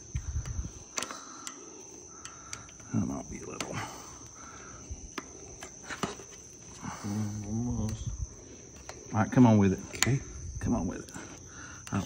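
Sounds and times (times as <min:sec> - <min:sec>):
steady high-pitched whine: 0:00.0 - 0:12.0.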